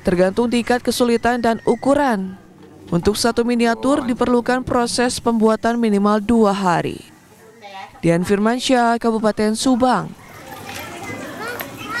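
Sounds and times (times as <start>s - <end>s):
children's voices at play: 9.8s - 12.0s
high-pitched children's calls: 10.2s - 12.0s.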